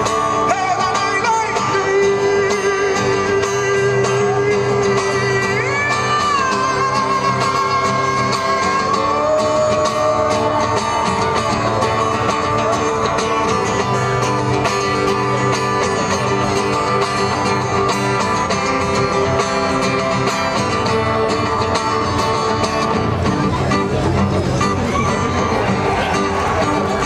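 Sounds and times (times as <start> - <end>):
live band playing instrumental: 0.0 - 27.0.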